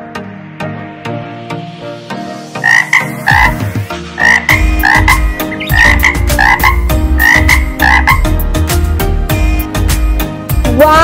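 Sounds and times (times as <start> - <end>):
light background music: 0.0 - 11.0
frog croaking: 2.6 - 8.4.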